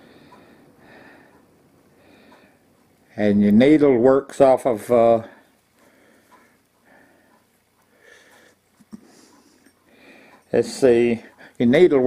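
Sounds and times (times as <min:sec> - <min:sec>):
faint breathing: 0:00.0 - 0:02.8, 0:05.2 - 0:11.6.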